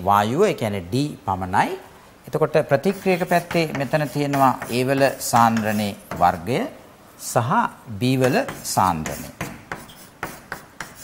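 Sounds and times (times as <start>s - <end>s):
chalk tapping and scraping on blackboard: 2.8s - 6.4s, 8.2s - 11.0s.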